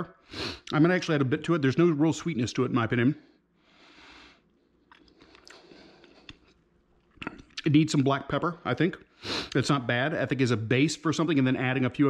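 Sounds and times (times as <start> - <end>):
faint chewing: 4.8 - 7.7.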